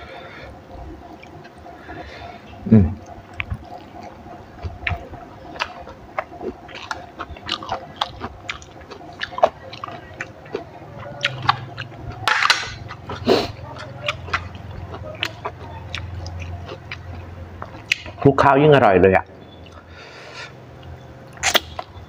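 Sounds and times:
person chewing food: 0:00.2 - 0:18.2, 0:19.4 - 0:22.0.

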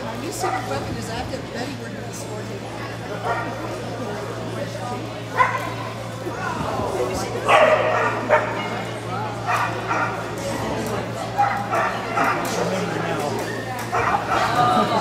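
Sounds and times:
small dog barking: 0:07.5 - 0:08.6.

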